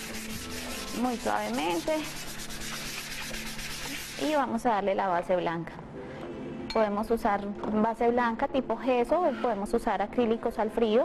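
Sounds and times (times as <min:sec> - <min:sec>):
sandpaper rubbing on wood: 0:00.0 - 0:04.5.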